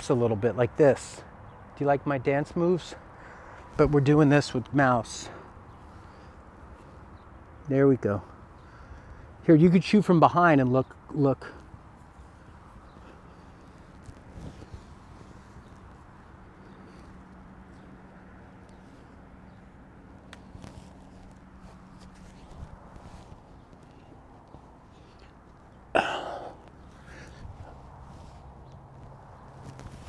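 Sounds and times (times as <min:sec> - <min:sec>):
shuffling and rustling: 0:11.6 - 0:25.8, 0:26.6 - 0:30.0.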